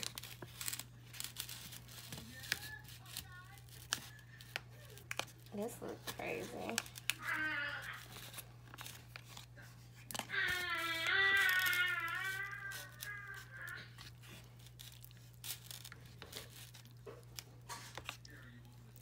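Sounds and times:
plastic film crinkling: 0.0 - 19.0.

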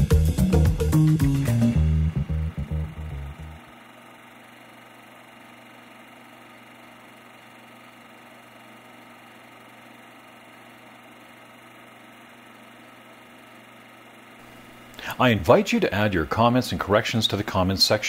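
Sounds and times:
music: 0.0 - 3.6.

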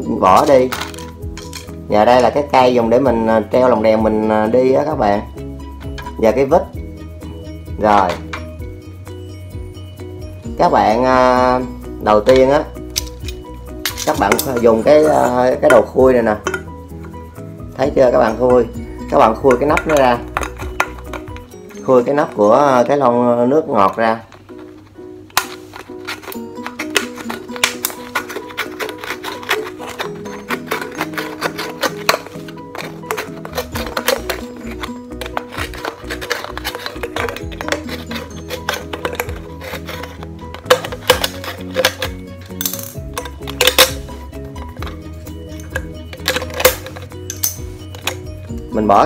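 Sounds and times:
background music: 0.0 - 49.0
metal clicks and scrapes on can: 0.3 - 2.4, 12.3 - 16.7, 19.2 - 22.2, 23.8 - 48.3.

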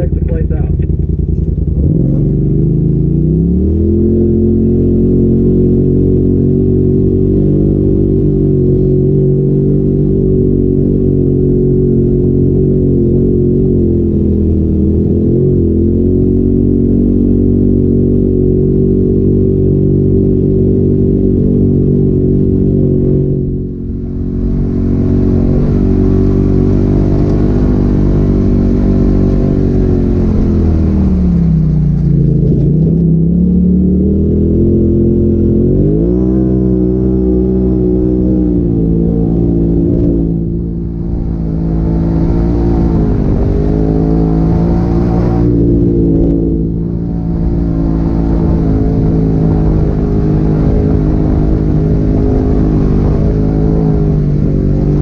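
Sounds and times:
off-road vehicle engine running: 0.0 - 55.0.

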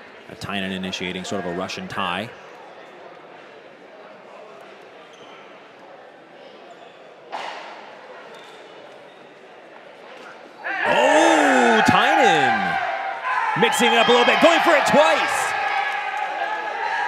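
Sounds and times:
indoor arena murmur: 0.0 - 17.0
man shouting excitedly: 10.8 - 12.8, 13.5 - 15.6.

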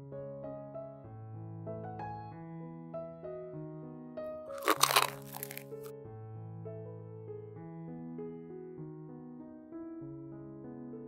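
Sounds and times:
soft piano music: 0.0 - 11.0
crunching of fried crust: 4.5 - 5.9.

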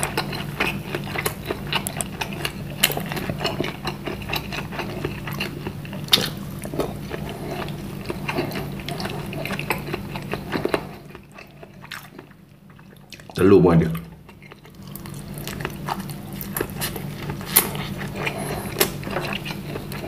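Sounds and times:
close chewing and mouth sounds: 0.0 - 20.0
steady low hum: 0.0 - 20.0.

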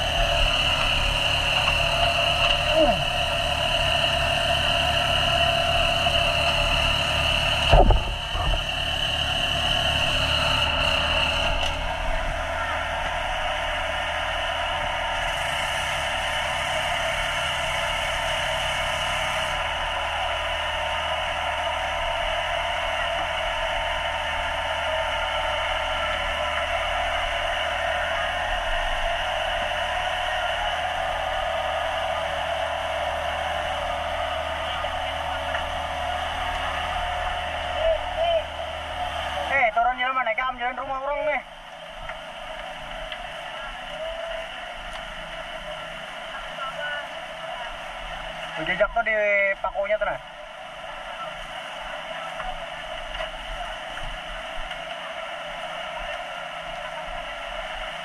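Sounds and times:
fire hose spraying water: 0.0 - 58.0.

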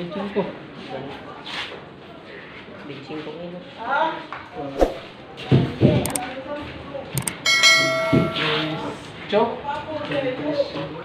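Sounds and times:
mouse click: 6.0 - 6.2, 7.2 - 7.4
notification bell chime: 7.4 - 8.8.

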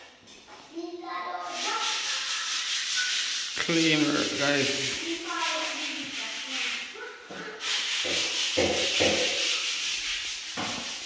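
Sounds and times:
scratchy rubbing noise: 1.4 - 11.0.

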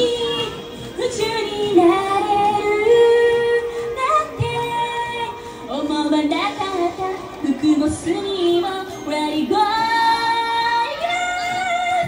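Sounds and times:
backing music: 0.0 - 12.0
woman singing into microphone: 0.0 - 12.0.

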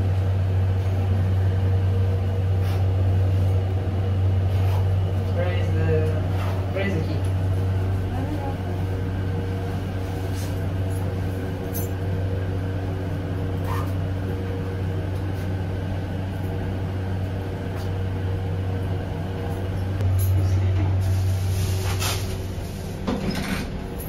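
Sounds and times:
elevator hum: 0.0 - 24.0.

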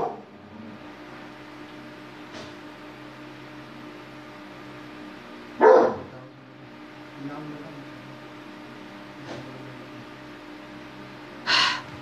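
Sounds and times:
dog barking: 0.0 - 0.2, 5.6 - 6.1
low steady hum: 0.0 - 12.0.

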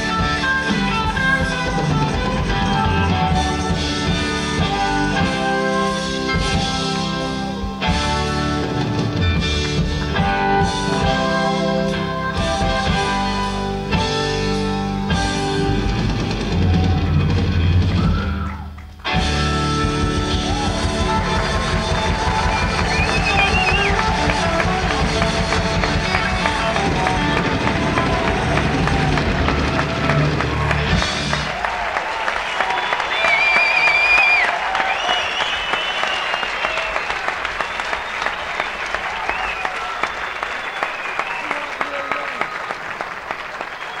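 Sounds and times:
live rock band playing: 0.0 - 42.2
audience cheering and whistling: 16.5 - 18.9, 19.9 - 44.0
audience applauding: 16.5 - 44.0.

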